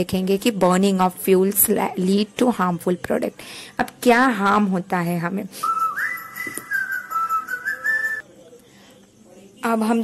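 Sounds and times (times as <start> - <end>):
high shrill whistling tone: 5.6 - 8.2.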